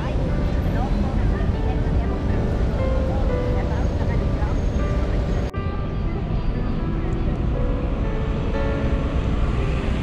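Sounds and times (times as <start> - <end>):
indistinct voices: 0.0 - 7.8
traffic rumble: 0.0 - 10.0.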